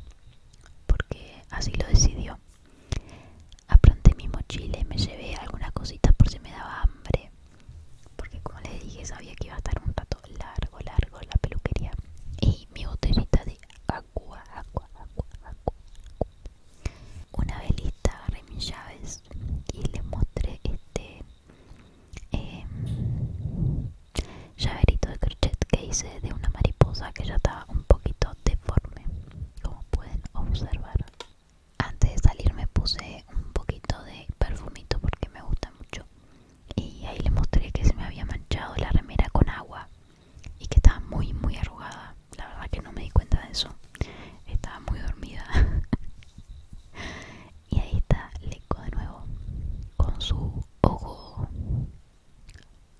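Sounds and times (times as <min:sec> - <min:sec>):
whispered speech: 0:00.9 - 0:02.4, 0:03.7 - 0:07.3, 0:08.2 - 0:16.3, 0:17.3 - 0:21.3, 0:22.2 - 0:23.0, 0:24.6 - 0:31.1, 0:31.8 - 0:36.1, 0:36.7 - 0:39.9, 0:40.6 - 0:43.8, 0:44.5 - 0:45.6, 0:47.7 - 0:49.4, 0:50.0 - 0:51.5
small clicks: 0:31.0 - 0:31.6.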